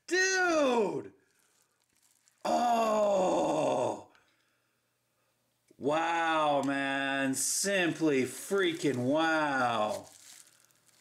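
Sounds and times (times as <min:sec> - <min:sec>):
man exclaiming in amazement: 0:00.0 - 0:01.1, 0:02.4 - 0:04.1, 0:05.8 - 0:06.7.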